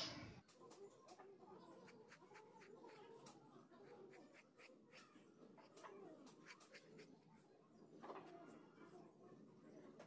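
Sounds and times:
pencil scratching on paper: 1.8 - 7.2.

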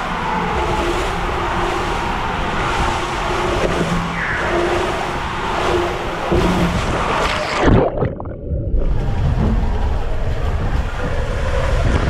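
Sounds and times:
low rumble: 0.0 - 12.0
water rushing in slide tube: 0.0 - 12.0.

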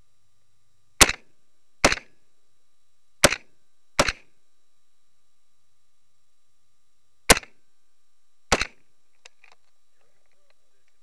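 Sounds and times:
carbine shots: 1.0 - 2.2, 3.2 - 4.3, 7.3 - 7.6, 8.5 - 8.8.

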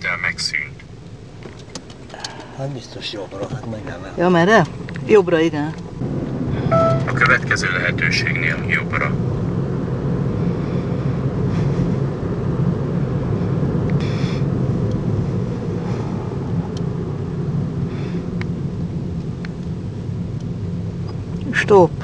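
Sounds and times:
car engine and road noise: 0.5 - 22.0
faint brief sounds: 6.7 - 7.3.

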